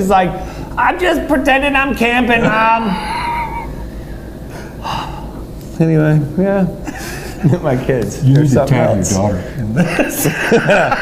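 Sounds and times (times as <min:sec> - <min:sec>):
person speaking: 0:00.0 - 0:03.8
low steady hum: 0:00.0 - 0:11.0
man laughing breathily: 0:02.5 - 0:03.9, 0:06.8 - 0:07.5.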